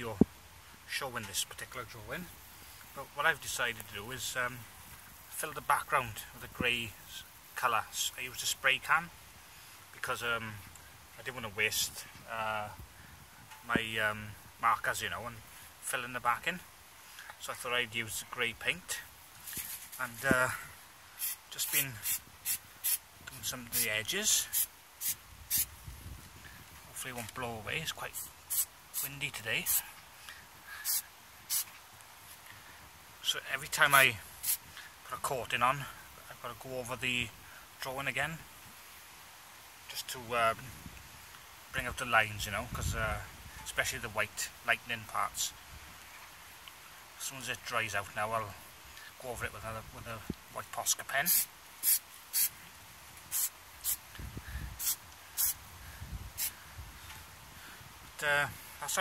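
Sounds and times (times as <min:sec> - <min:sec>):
spray paint can hissing: 0:21.2 - 0:23.0, 0:24.5 - 0:25.7, 0:28.5 - 0:29.8, 0:30.8 - 0:31.7, 0:34.4 - 0:34.6, 0:51.3 - 0:52.5, 0:53.3 - 0:54.0, 0:54.8 - 0:55.6.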